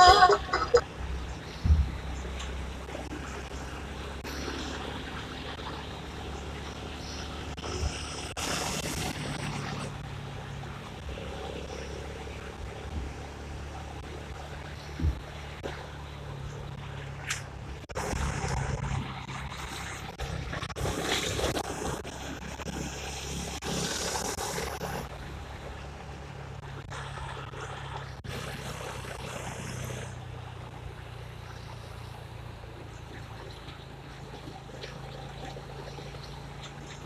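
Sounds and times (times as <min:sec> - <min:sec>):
motorcycle engine running: 0:00.0 - 0:37.0.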